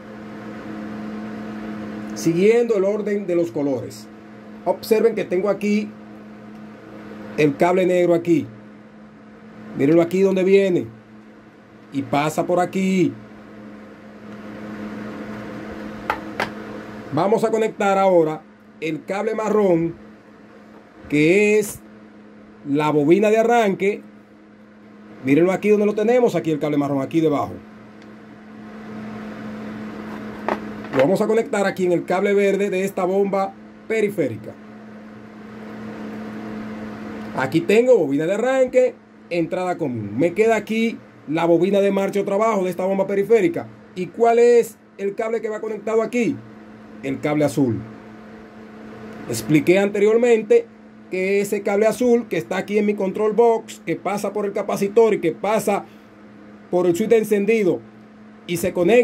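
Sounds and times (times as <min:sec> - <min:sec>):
background whir: 0:00.0 - 0:59.0
machine humming: 0:00.0 - 0:59.0.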